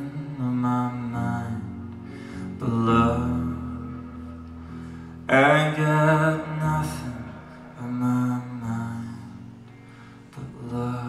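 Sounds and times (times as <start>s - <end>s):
sustained electric guitar: 0.0s - 11.0s
man singing with vibrato: 2.5s - 4.3s, 5.3s - 9.4s, 10.4s - 11.0s.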